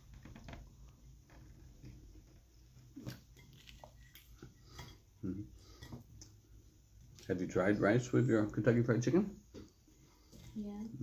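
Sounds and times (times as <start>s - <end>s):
man chewing food: 0.0s - 7.3s.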